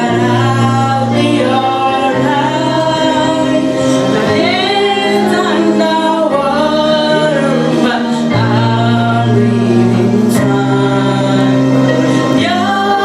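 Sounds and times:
instrumental accompaniment: 0.0s - 13.0s
woman singing gospel song: 0.0s - 13.0s.

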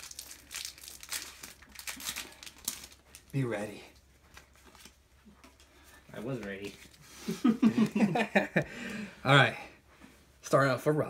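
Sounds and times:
foil wrapper crinkling: 0.0s - 3.6s.

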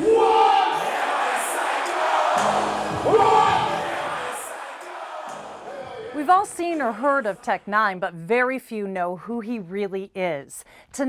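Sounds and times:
loud rising shout: 0.0s - 6.2s
crowd cheering and shouting: 0.0s - 6.8s
rap music from stage: 0.0s - 8.0s.

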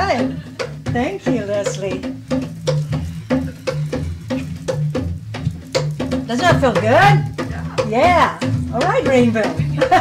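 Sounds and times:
hand drum beat: 0.0s - 10.0s.

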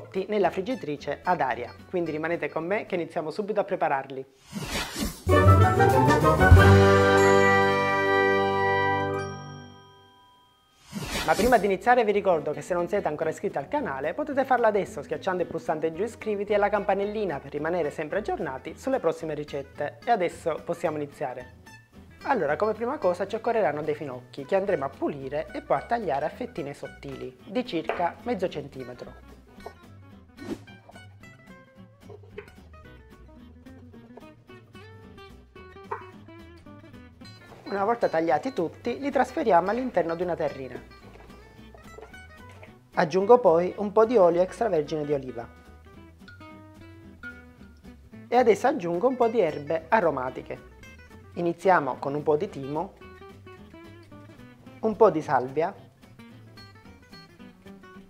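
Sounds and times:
chime and bell jingle: 6.8s - 10.8s
plucked guitar music: 27.8s - 43.0s, 45.0s - 48.3s
knife cutting on wooden board: 30.4s - 31.0s.

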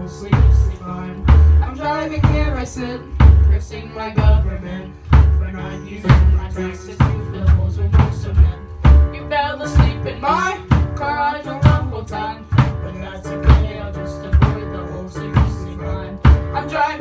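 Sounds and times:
person singing with vibrato: 0.0s - 17.0s
pop-rock band playing: 0.0s - 17.0s
kick drum beat: 0.2s - 16.8s.

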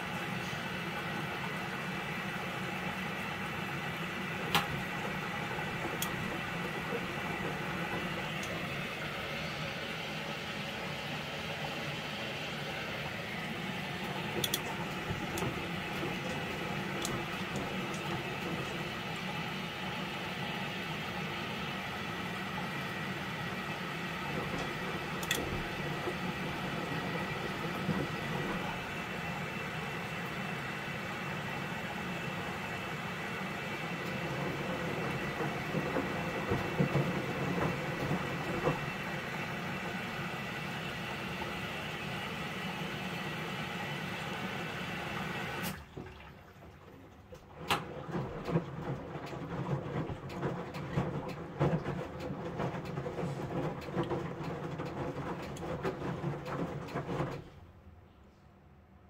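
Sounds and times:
drum tumbling wet laundry: 0.0s - 57.9s
washing machine water rushing: 0.0s - 57.9s.

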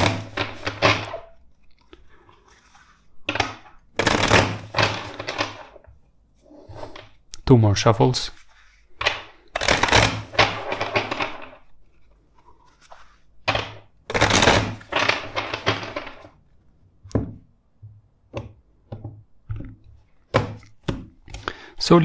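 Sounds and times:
cards being shuffled: 8.3s - 16.4s.

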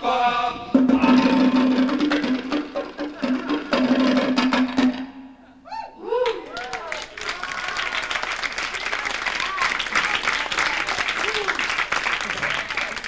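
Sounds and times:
fast bongo drumming: 0.8s - 5.2s.

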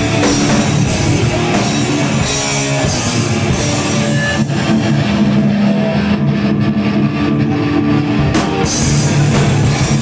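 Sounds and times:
bass guitar: 0.0s - 10.0s
distorted electric guitars: 0.0s - 10.0s
drum kit: 0.0s - 10.0s.

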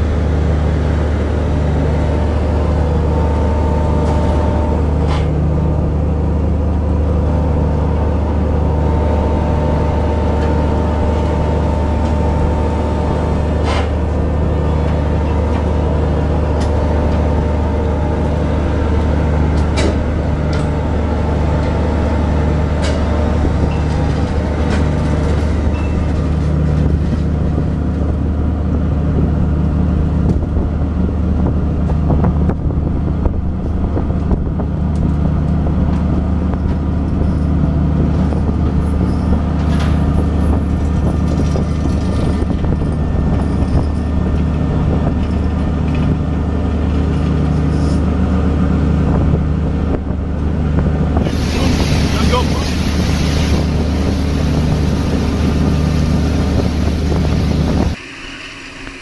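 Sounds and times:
boat engine low drone: 0.0s - 59.0s.

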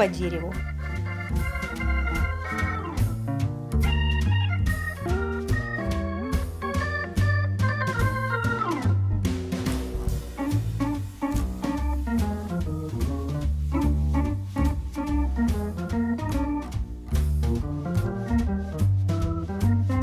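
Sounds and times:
organ-like keyboard music with beat: 0.0s - 20.0s.

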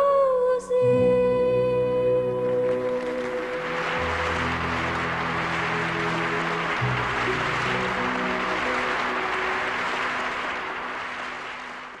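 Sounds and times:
audience applause: 2.6s - 12.0s.

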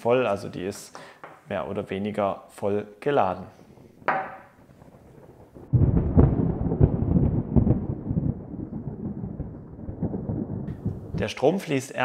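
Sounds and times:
deep thunder-like rumble: 3.5s - 11.6s.

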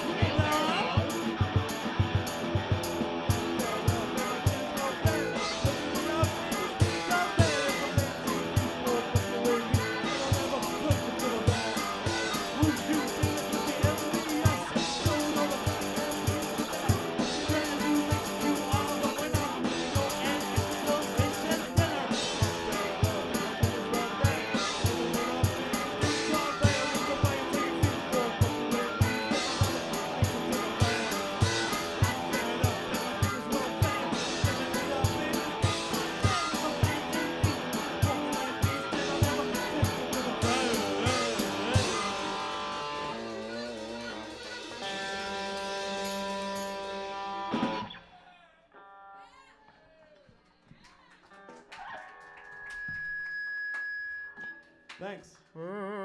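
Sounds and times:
fast drum beat: 0.0s - 43.2s
electric guitar: 0.0s - 48.1s
held high tone: 3.4s - 46.7s.

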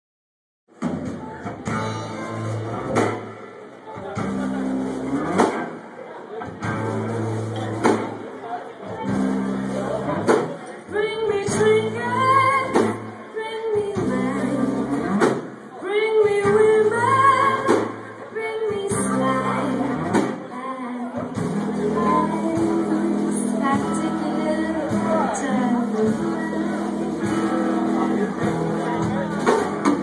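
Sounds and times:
drum hits: 0.7s - 3.5s, 4.1s - 5.8s, 6.6s - 8.3s
live funk band playing: 0.7s - 30.0s
woman singing lead vocal: 10.9s - 27.8s.

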